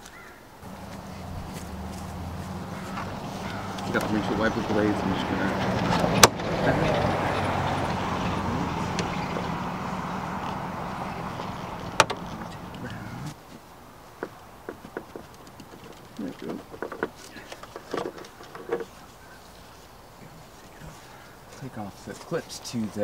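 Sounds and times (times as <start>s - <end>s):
vehicle engine hum: 0.6s - 13.4s
wiper arm click: 11.8s - 12.8s.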